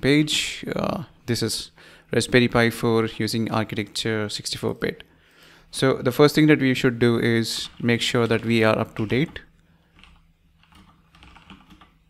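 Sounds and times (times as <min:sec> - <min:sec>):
keyboard typing clicks: 0:10.0 - 0:12.0.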